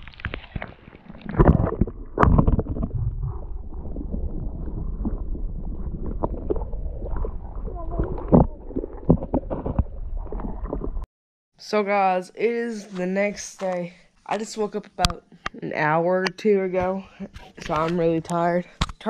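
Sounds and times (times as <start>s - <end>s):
muffled underwater water rumble: 0.0s - 11.1s.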